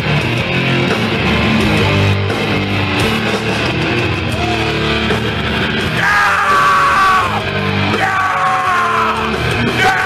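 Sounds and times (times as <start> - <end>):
death metal band playing live: 0.0 - 10.0.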